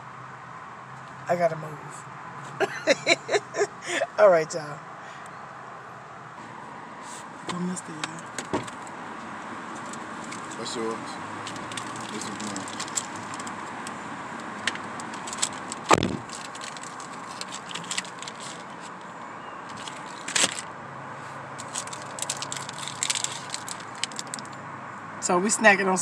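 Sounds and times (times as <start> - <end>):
plastic wrappers crinkling: 11.5 - 13.7, 14.4 - 18.9, 19.7 - 20.6, 21.6 - 24.6.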